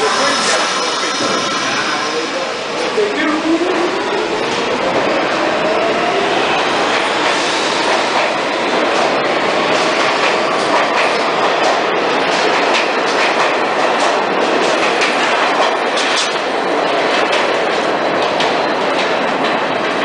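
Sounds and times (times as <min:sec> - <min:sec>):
subway train rumbling past: 0:00.0 - 0:20.0.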